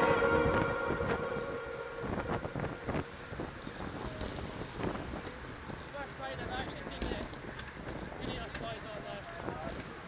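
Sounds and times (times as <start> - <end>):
background music: 0.0 - 3.2
tyre and road noise: 0.0 - 10.0
wind buffeting microphone: 0.0 - 10.0.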